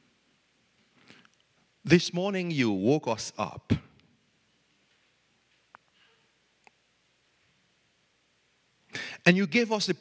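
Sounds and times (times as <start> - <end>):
man praying: 1.8 - 4.0, 9.0 - 10.0.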